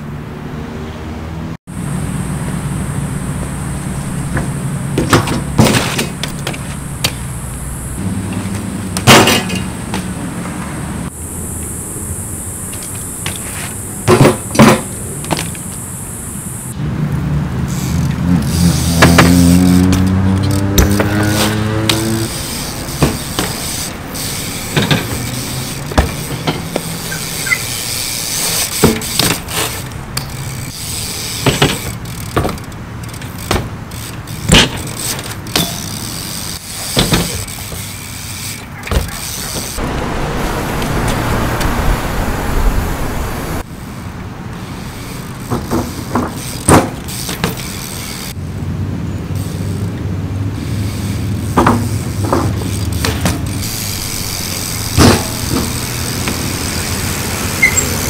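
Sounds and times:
bike tyres rolling on concrete: 1.7 - 58.0
bike landings knocking and clanking: 4.2 - 7.4, 8.3 - 10.5, 12.7 - 15.7, 19.0 - 22.3, 22.9 - 39.8, 45.4 - 48.2, 51.5 - 56.9
vehicle engine climbing in pitch: 39.8 - 43.7.

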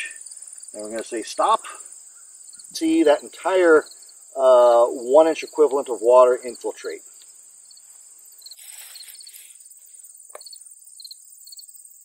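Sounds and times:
high insect trill: 0.0 - 12.0
brief rustle: 8.6 - 9.6.

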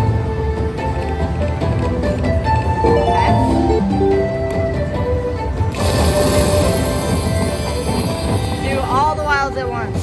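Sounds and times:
slot machine bonus music: 2.8 - 4.5.

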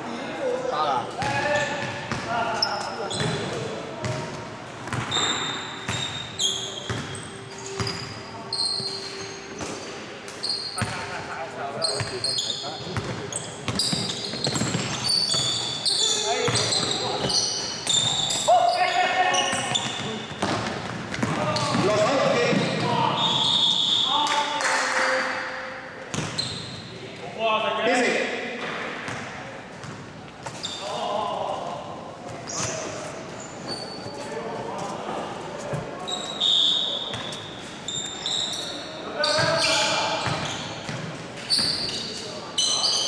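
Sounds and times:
sneaker squeaks: 0.6 - 24.4, 26.1 - 27.0, 29.1 - 31.2, 32.3 - 43.0.

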